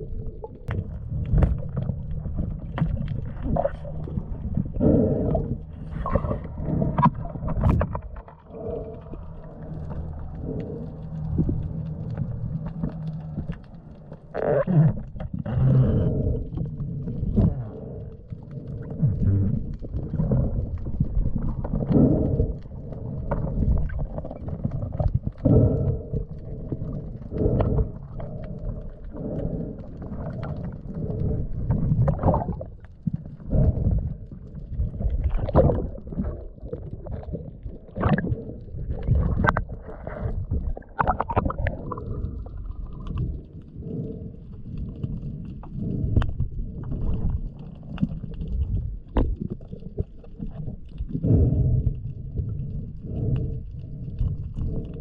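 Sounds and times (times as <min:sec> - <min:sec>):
water surging underwater: 0:00.0 - 0:55.0.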